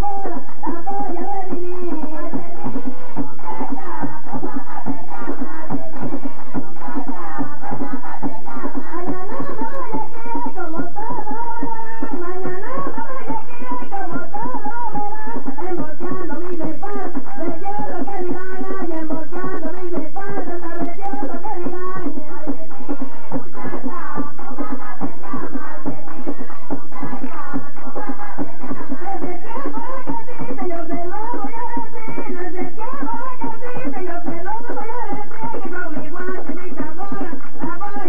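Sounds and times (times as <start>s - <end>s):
drums beating quick rhythm: 0.0s - 38.0s
person singing: 0.0s - 38.0s.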